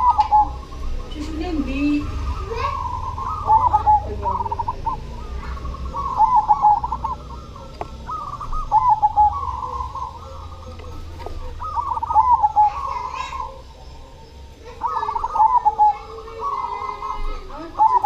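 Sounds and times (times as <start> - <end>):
dove cooing: 0.0 - 18.0.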